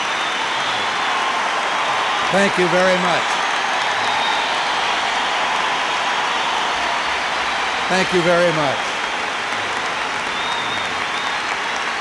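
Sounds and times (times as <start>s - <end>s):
large audience applauding: 0.0s - 12.0s.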